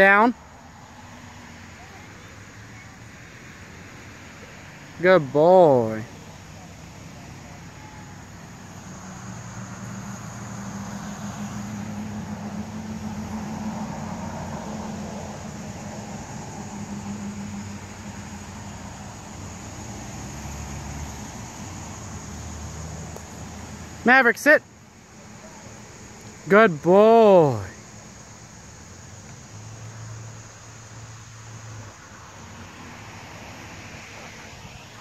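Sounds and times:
vehicle engine passing by: 0.0 - 35.0.

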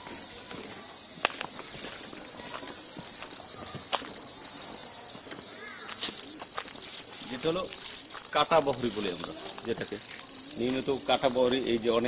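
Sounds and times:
insects chorus with pulsing trill: 0.0 - 12.0.

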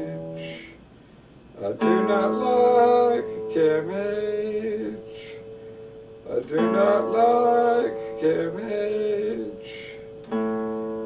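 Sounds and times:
person singing: 0.0 - 0.8, 1.6 - 5.6, 6.2 - 10.4
acoustic guitar chord ringing: 0.0 - 11.0.

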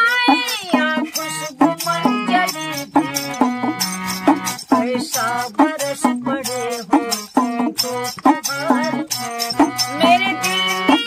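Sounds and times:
voices singing: 0.0 - 3.4, 4.2 - 11.0
frame drum with jingles: 0.0 - 11.0.

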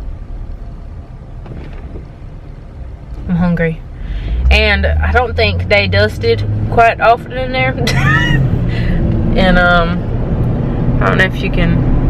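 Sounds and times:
road and engine rumble in cabin: 0.0 - 12.0.

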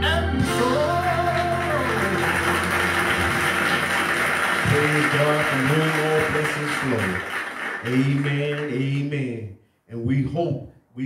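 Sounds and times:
man's voice: 0.0 - 2.3, 4.6 - 11.0
gospel music with singing: 0.0 - 10.2.

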